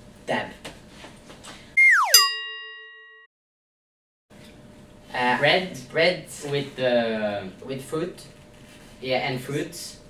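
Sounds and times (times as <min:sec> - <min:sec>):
falling whistle-like glide: 0:01.8 - 0:02.3
bright bell-like ding: 0:01.9 - 0:03.3.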